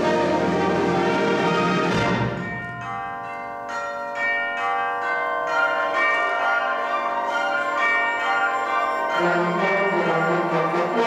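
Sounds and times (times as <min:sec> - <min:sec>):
tubular bells ringing: 0:00.0 - 0:11.0.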